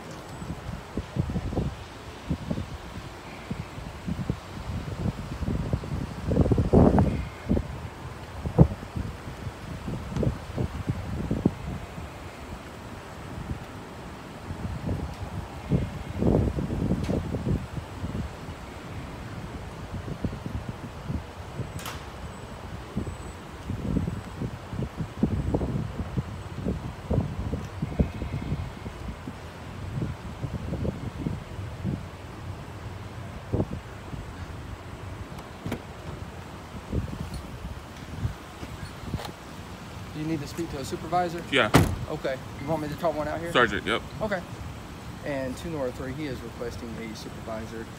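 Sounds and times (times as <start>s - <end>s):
wind buffeting microphone: 0.0s - 47.9s.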